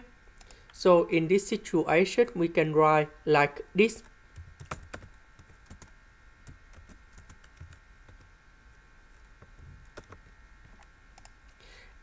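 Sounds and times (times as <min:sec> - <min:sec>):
low steady hum: 0:00.0 - 0:12.0
computer keyboard clicks: 0:04.4 - 0:05.9, 0:06.7 - 0:08.3, 0:09.9 - 0:10.2, 0:10.8 - 0:11.4.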